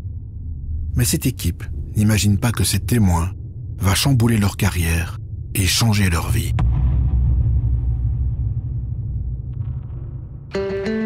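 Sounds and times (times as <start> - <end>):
deep low rumbling drone: 0.0 - 4.6.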